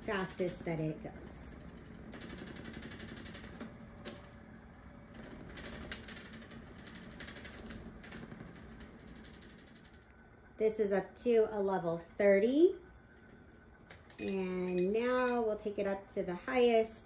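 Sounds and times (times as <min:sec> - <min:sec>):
vibration plate rattling: 0:00.0 - 0:04.3, 0:05.1 - 0:10.1.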